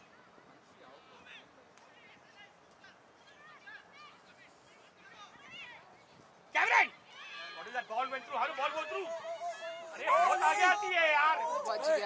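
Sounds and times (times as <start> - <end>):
distant high-pitched shouting: 6.6 - 12.0.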